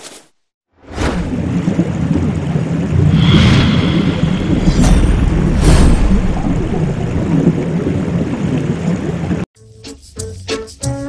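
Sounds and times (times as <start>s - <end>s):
loud low rumble: 2.9s - 8.4s.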